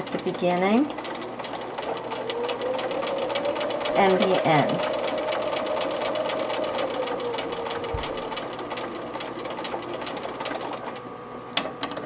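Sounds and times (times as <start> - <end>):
sewing machine stitching: 0.0 - 11.0.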